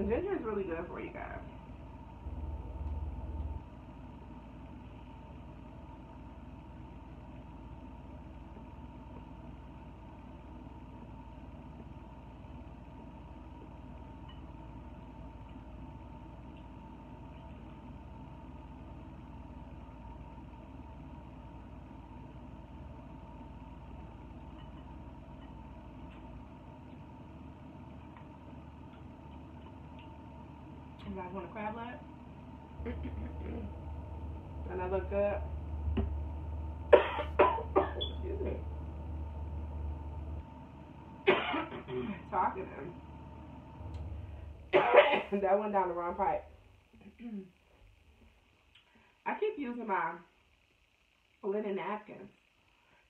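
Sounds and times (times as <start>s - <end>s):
low hum: 0.0s - 49.0s
faint constant whine: 0.0s - 53.0s.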